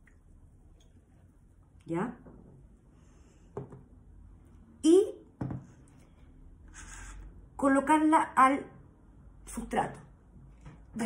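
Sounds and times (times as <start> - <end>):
soft breath: 2.9 - 3.6
knock on tabletop: 3.6 - 3.8, 5.4 - 5.6.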